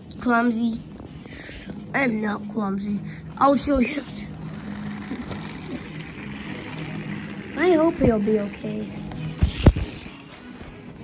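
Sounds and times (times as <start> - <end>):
toy train motor humming: 1.4 - 11.0.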